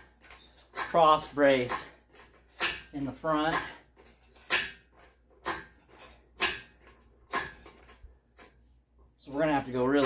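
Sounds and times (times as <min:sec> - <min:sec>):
hydraulic hoist pump strokes: 0:00.0 - 0:08.7.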